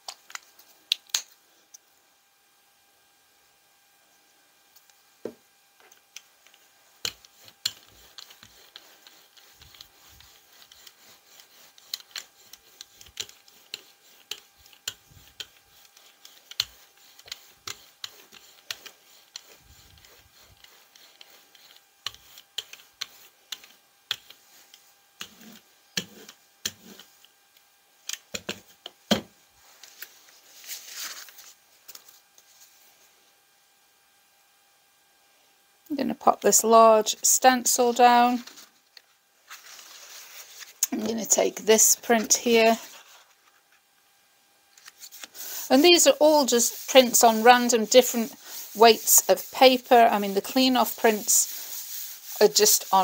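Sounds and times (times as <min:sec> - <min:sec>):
brayer rolling sticky paint: 0:05.8 - 0:27.4, 0:44.7 - 0:53.0.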